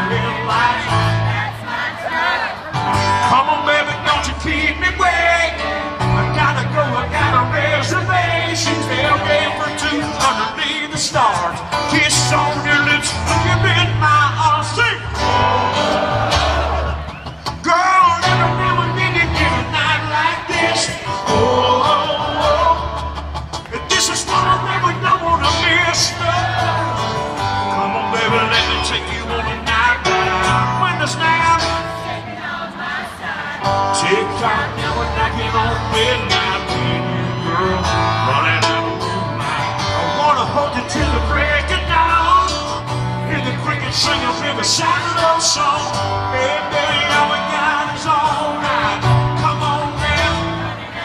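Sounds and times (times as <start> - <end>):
man singing: 0.0 - 1.3, 2.8 - 16.9, 17.6 - 32.0, 33.7 - 50.8
guitar: 0.0 - 51.0
live country band music: 0.0 - 51.0.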